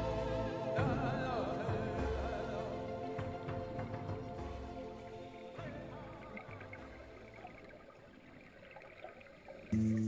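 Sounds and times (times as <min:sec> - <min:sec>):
background music: 0:00.0 - 0:08.3, 0:09.7 - 0:10.0.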